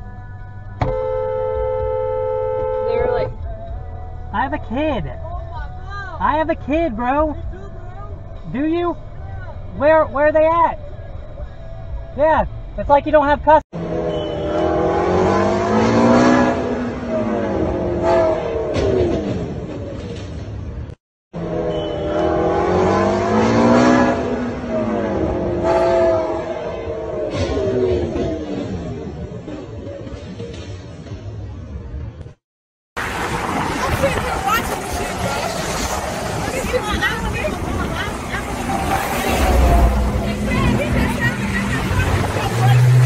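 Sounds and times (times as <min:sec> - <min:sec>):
highway traffic noise: 0:00.7 - 0:32.4, 0:33.0 - 0:43.0
sports car engine revving: 0:13.8 - 0:19.3, 0:21.4 - 0:29.6, 0:33.6 - 0:43.0
indistinct voices talking: 0:33.7 - 0:43.0.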